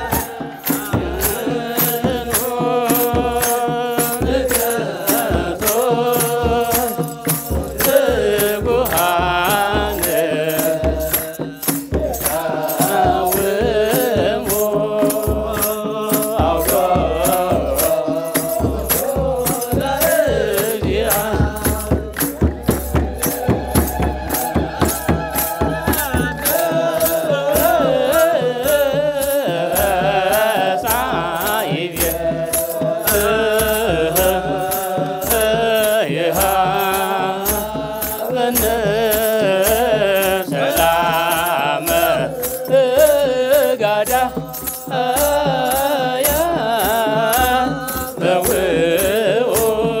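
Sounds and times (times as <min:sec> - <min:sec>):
drum beats: 0:00.0 - 0:50.0
jingling rattles: 0:00.0 - 0:50.0
male voices chanting: 0:00.0 - 0:50.0.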